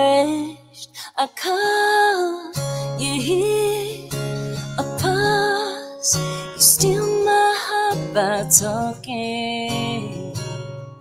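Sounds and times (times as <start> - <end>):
strummed acoustic guitar: 2.2 - 11.0.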